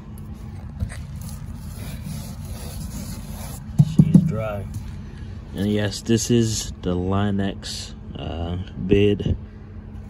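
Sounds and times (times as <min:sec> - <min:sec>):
hand rubbing rubber mat: 0:00.2 - 0:05.0.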